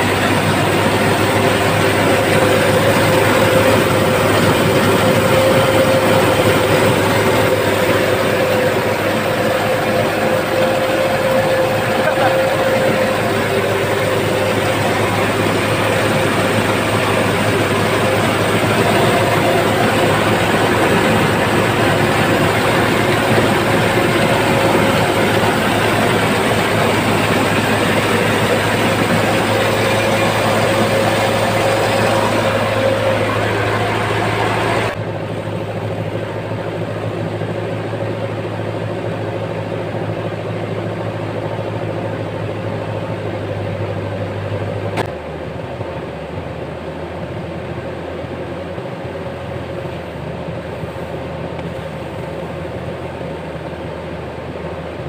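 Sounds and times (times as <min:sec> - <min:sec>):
rice mill machinery running: 0:00.0 - 0:55.0.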